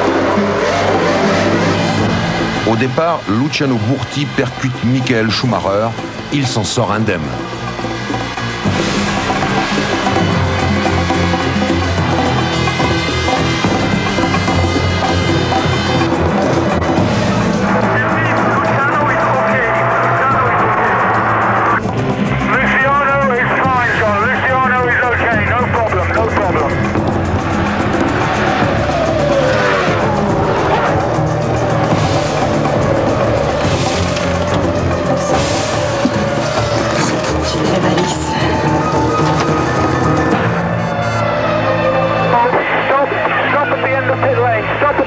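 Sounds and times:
music: 0.0 - 45.0
racing cars sweeping past: 26.3 - 41.2
racing car engines at high revs: 26.7 - 41.2.

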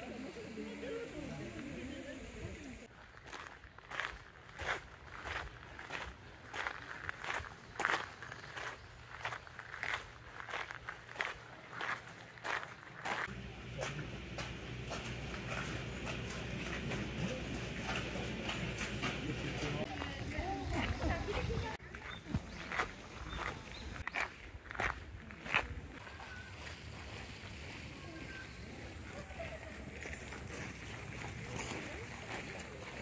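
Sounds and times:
outdoor background noise: 0.0 - 33.0
footsteps on gravel: 2.8 - 33.0.

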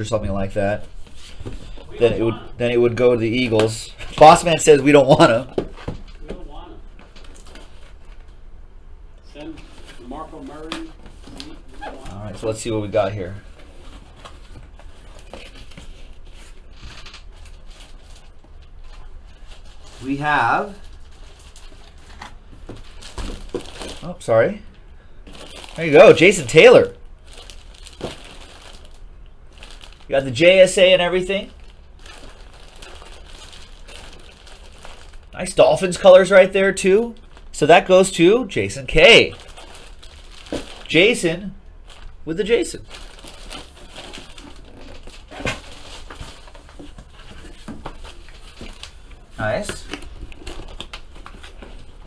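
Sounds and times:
plastic bag crinkling: 13.8 - 24.3, 25.2 - 38.2, 38.9 - 52.0.

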